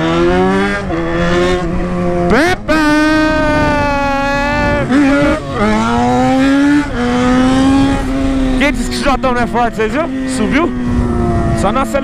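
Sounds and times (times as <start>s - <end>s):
motorcycle engine at high revs: 0.0s - 12.0s.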